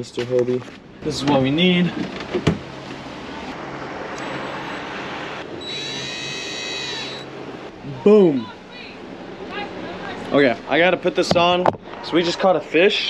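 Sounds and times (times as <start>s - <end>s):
cordless drill whirring: 5.6s - 7.3s.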